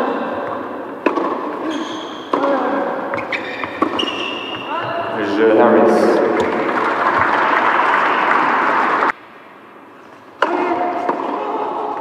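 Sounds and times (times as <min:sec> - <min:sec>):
tennis ball knock: 0:01.0 - 0:01.5
audience applauding: 0:06.1 - 0:09.1.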